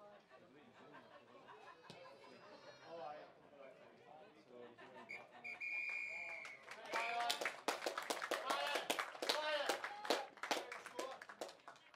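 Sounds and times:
faint spectator chatter: 0:00.0 - 0:05.6.

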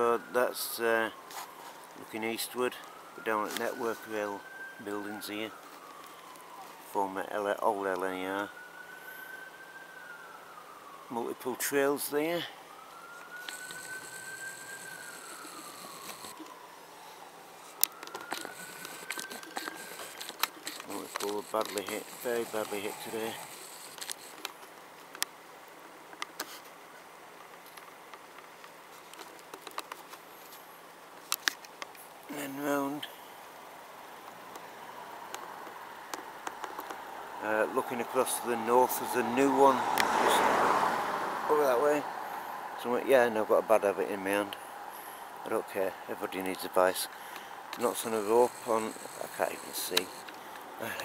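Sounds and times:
faint emergency siren wailing: 0:00.0 - 0:24.7, 0:32.3 - 0:51.0
outdoor background hiss: 0:00.0 - 0:51.0.

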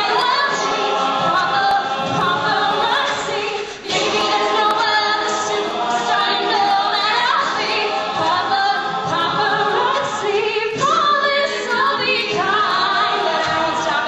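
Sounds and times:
a cappella vocal ensemble singing: 0:00.0 - 0:14.0.

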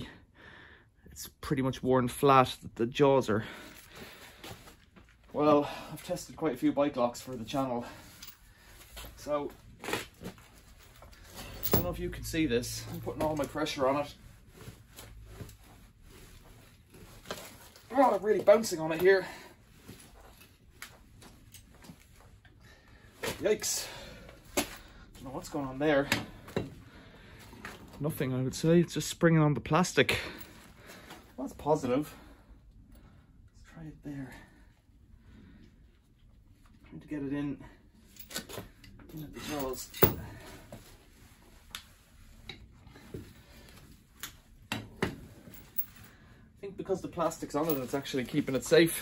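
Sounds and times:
bolt cutters snapping chain: 0:11.5 - 0:12.0.

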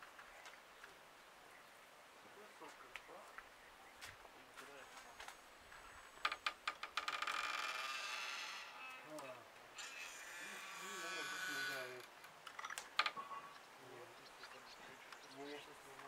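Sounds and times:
wooden door creaking on hinges: 0:06.2 - 0:09.2, 0:09.8 - 0:13.2.

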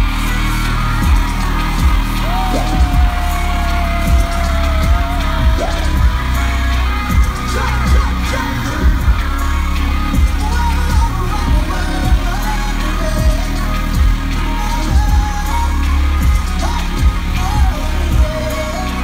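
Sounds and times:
heavy bass beat: 0:00.0 - 0:19.0
live concert music: 0:00.0 - 0:19.0.

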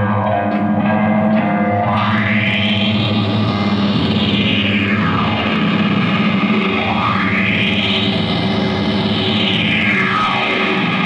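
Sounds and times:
distorted electric guitar sweeping: 0:00.0 - 0:11.0.

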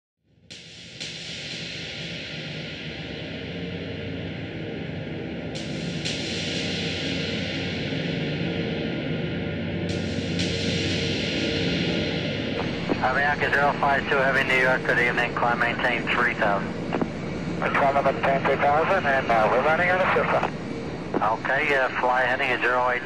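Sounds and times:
steady rushing drone: 0:06.7 - 0:23.0
low hum: 0:12.4 - 0:23.0.

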